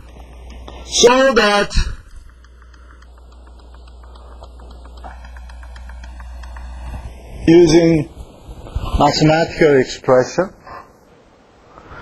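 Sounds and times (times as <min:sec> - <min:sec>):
low electrical hum: 0:00.0 - 0:12.0
faint light clicks: 0:02.1 - 0:07.1.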